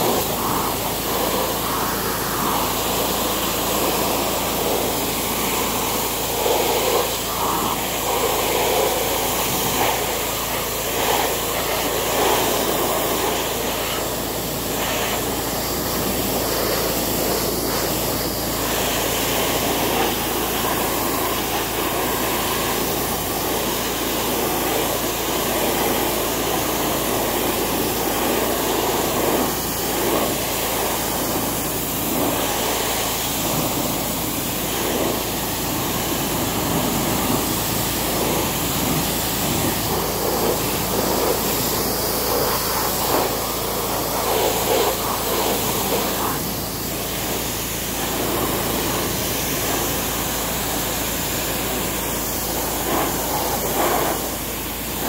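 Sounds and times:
pressure washer spraying water: 0.0 - 55.0.

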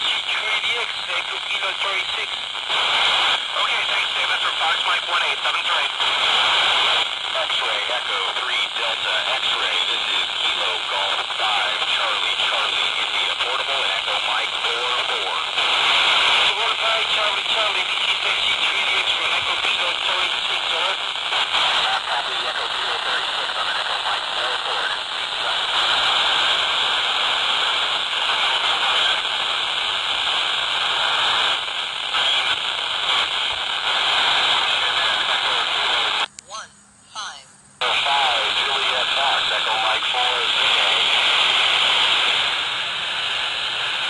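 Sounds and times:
garbled radio voices: 0.0 - 42.6
radio static hiss: 0.0 - 44.0.

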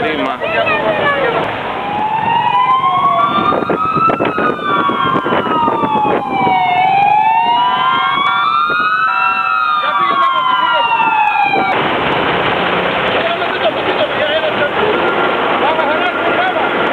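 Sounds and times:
fire engine sirens wailing: 0.0 - 16.9
higher-pitched siren: 0.5 - 11.8.

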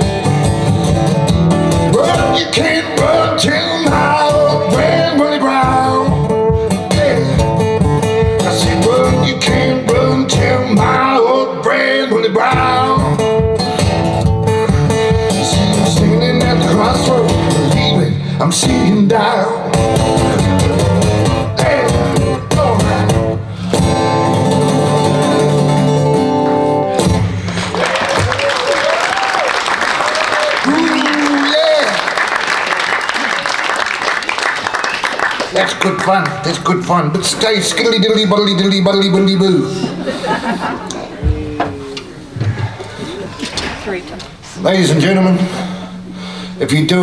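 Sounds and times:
acoustic blues guitar: 0.0 - 28.3, 35.5 - 47.0
man singing: 1.9 - 13.5, 15.1 - 23.2
audience applause: 27.4 - 36.7.

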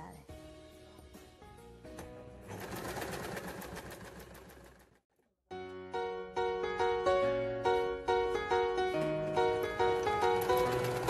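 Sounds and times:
soft background music: 0.0 - 3.8, 5.5 - 11.0
sewing machine stitching: 2.4 - 5.0, 9.8 - 11.0.

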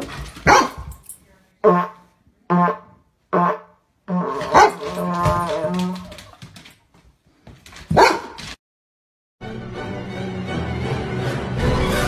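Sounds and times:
dog barking: 0.4 - 1.0, 4.4 - 5.0, 7.9 - 8.4.

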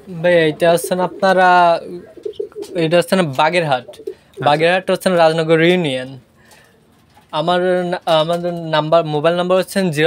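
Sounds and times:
man speaking: 0.0 - 6.2
pigeons cooing: 0.4 - 4.6.

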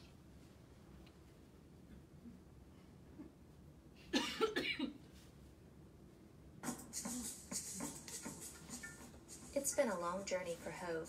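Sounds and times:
person coughing: 4.1 - 5.0.

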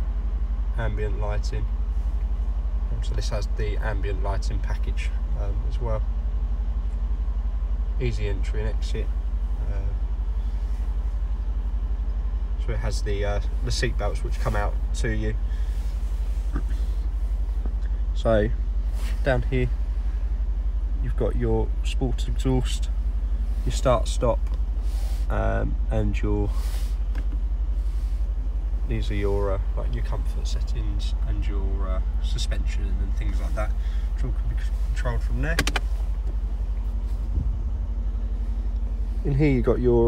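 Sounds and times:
car engine idling: 0.0 - 40.0.

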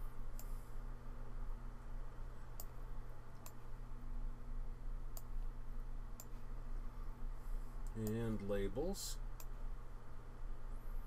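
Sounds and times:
steady low hum: 0.0 - 11.0
computer mouse clicks: 2.5 - 2.8, 3.4 - 3.6, 5.1 - 5.3, 6.2 - 6.4.

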